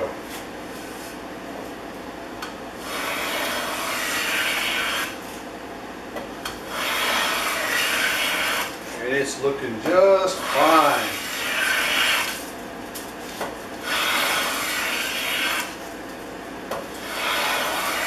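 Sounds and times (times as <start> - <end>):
hand plane cutting wood shavings: 2.8 - 5.2, 6.7 - 8.8, 10.4 - 12.4, 13.8 - 15.8, 17.0 - 18.0
plane rasping on wood: 2.8 - 5.2, 6.6 - 8.9, 10.4 - 12.4, 13.8 - 15.8, 17.0 - 18.0.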